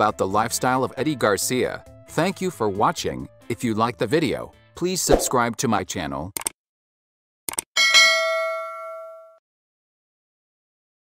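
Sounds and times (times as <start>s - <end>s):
notification bell ding: 7.8s - 9.4s.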